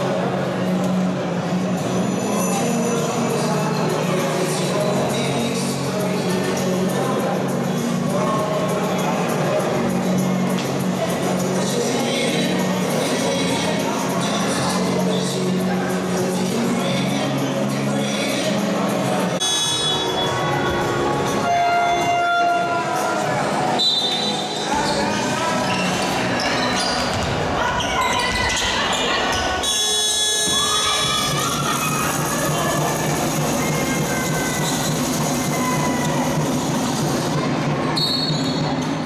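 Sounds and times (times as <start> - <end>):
echoing voices: 0.0 - 39.0.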